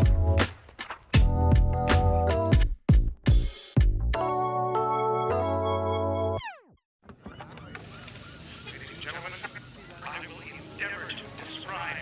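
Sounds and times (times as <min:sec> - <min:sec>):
flock of birds calling: 0:07.1 - 0:12.0.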